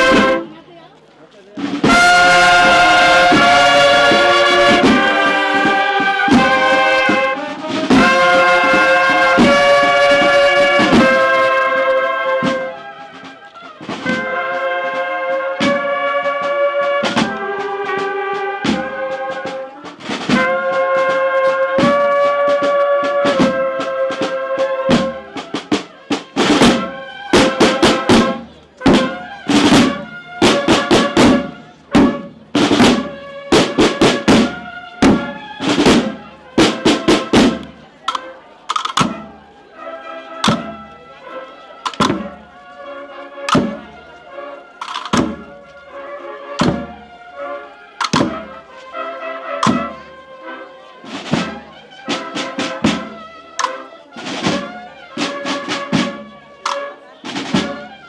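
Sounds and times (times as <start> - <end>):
snare and bass drums marching beat: 0.0 - 0.7, 1.5 - 58.0.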